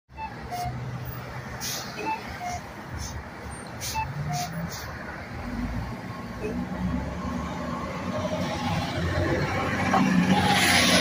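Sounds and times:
bus engine hum: 0.1 - 11.0.

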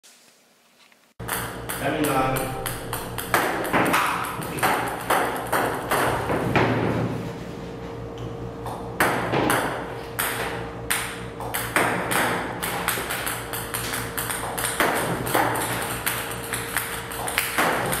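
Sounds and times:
table tennis balls clicking on table: 1.2 - 6.3, 10.2 - 18.0.

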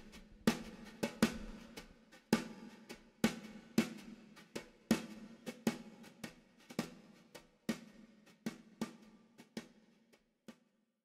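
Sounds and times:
drums playing a sparse beat: 0.0 - 10.6.

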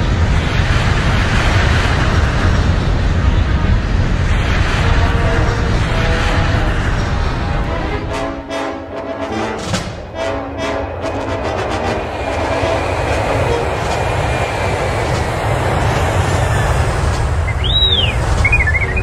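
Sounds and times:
rumbling spaceship engine: 0.0 - 8.5, 9.7 - 19.0
orchestral film music: 5.1 - 19.0
robot whistle: 17.5 - 19.0.

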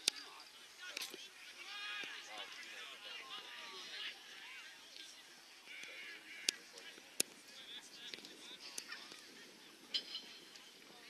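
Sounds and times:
distant players shouting: 1.5 - 4.8.

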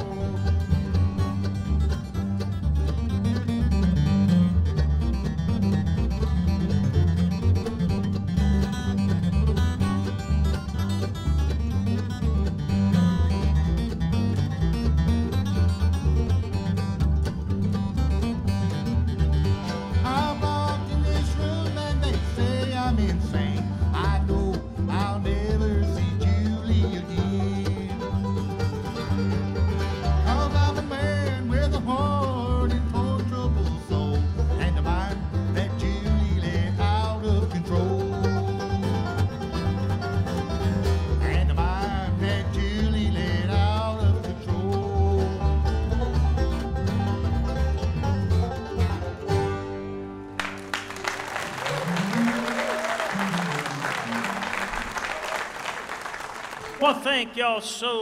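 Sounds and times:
acoustic guitar: 0.0 - 54.8
mandolin: 0.0 - 56.9
banjo: 0.0 - 57.2
upright bass: 0.0 - 58.0
man singing: 20.0 - 28.2, 30.2 - 38.4, 41.2 - 45.6, 56.8 - 58.0.

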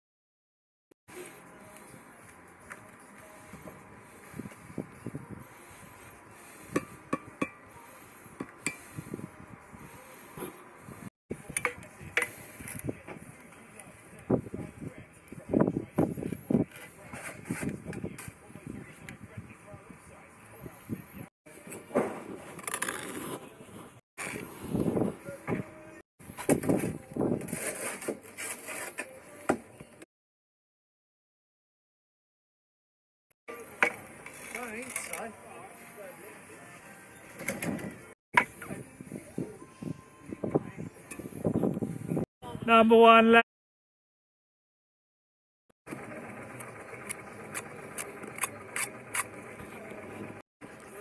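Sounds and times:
trowel scraping mortar: 16.3 - 18.3, 26.6 - 29.4, 33.6 - 35.4, 47.6 - 49.9.

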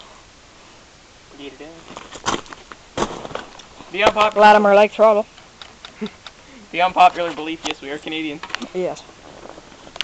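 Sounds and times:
handling knocks and rustles: 1.8 - 4.4.

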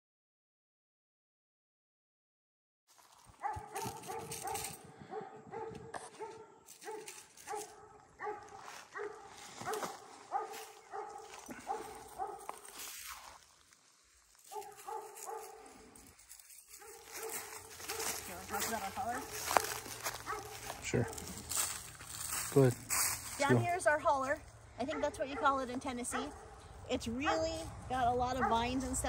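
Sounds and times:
dog barking: 3.4 - 12.8, 14.5 - 15.8, 16.7 - 21.7, 24.8 - 26.6, 27.2 - 27.6, 28.2 - 29.0.

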